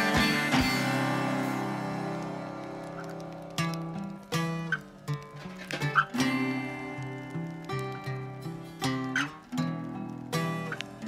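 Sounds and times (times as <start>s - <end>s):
acoustic guitar blues: 0.0s - 11.0s.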